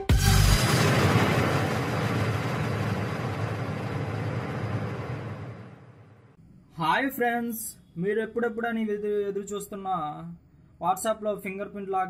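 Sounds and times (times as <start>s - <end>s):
long noisy whoosh: 0.1s - 6.4s.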